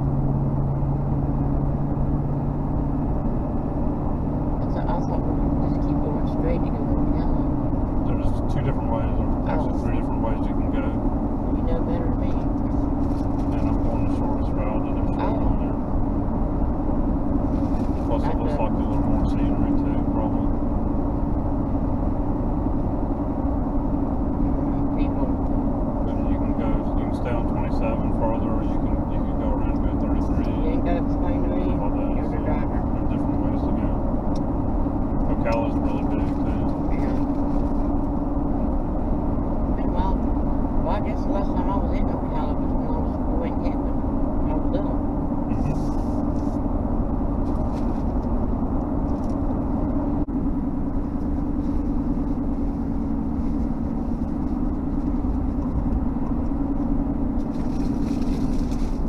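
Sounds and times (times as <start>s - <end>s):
car cabin road noise: 0.0s - 59.0s.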